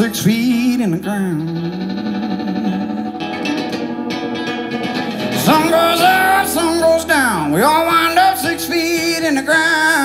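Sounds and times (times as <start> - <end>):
acoustic guitar strumming: 0.0 - 10.0
held note sustaining: 2.0 - 10.0.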